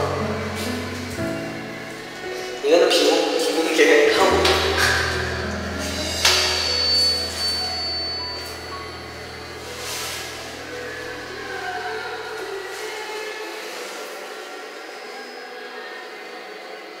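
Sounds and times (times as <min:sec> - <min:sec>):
karaoke backing track chord: 0:00.0 - 0:13.0.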